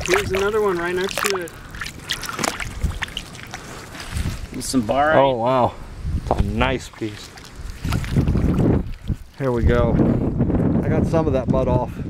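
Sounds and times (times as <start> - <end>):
short water splashes: 0.0 - 5.0, 6.4 - 10.0
shallow water sloshing: 0.0 - 5.1, 6.6 - 10.0.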